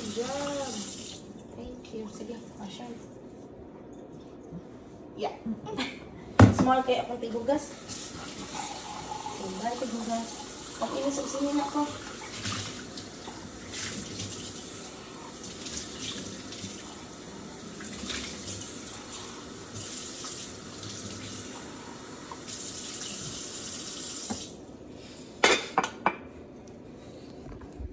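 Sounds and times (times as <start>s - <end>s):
faucet running into metal sink: 7.8s - 24.5s.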